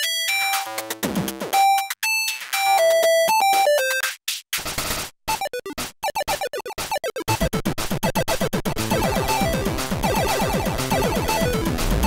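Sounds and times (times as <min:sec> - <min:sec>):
chiptune synth pattern: 0:02.6 - 0:12.0
stuttering repeated hits: 0:04.6 - 0:12.0.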